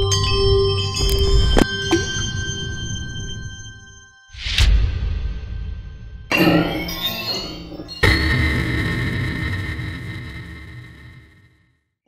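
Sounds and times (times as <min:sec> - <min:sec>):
bright bell-like chimes: 0:00.0 - 0:04.4, 0:06.3 - 0:08.3
sharp struck hits: 0:04.6 - 0:11.5.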